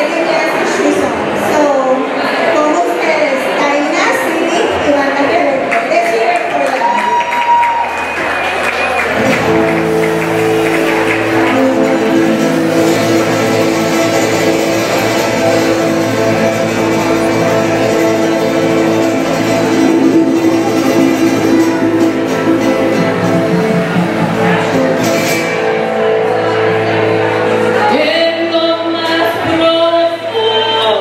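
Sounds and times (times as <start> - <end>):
live band playing: 7.2 - 29.6.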